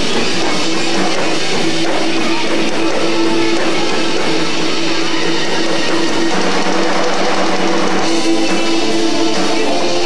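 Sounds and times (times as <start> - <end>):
bass: 0.0 - 10.0
drums: 0.0 - 10.0
electric guitars: 0.0 - 10.0
keyboards: 0.0 - 10.0.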